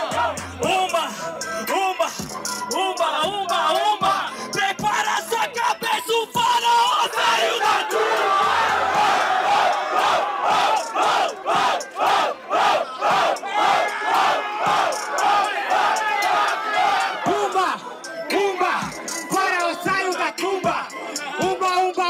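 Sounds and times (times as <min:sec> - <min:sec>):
crowd chanting in unison: 0:00.0 - 0:01.3, 0:07.0 - 0:21.9
crowd shouting and cheering: 0:00.0 - 0:22.0.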